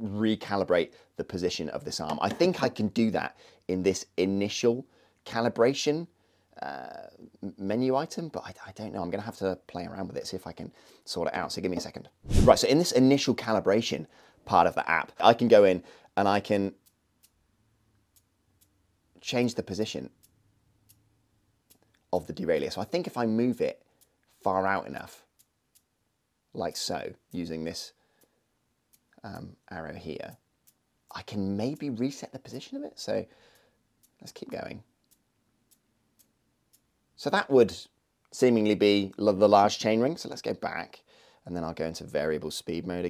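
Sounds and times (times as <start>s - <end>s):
faint ticks: 16.8s - 17.4s, 18.1s - 18.8s, 20.1s - 22.1s, 23.8s - 24.4s, 25.0s - 25.9s, 30.2s - 32.0s, 33.4s - 36.9s.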